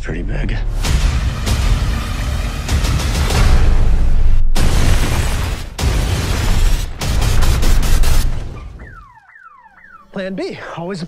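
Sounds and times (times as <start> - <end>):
car alarm whooping: 8.6 - 10.2.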